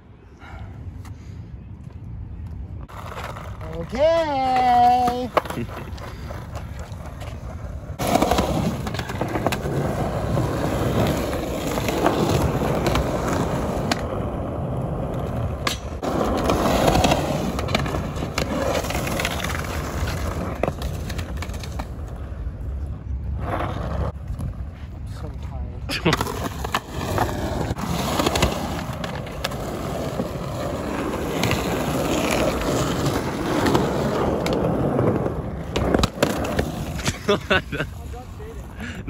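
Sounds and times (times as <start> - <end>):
skateboard wheels rolling on concrete: 0.0 - 39.0
skateboard clacks: 26.0 - 37.3.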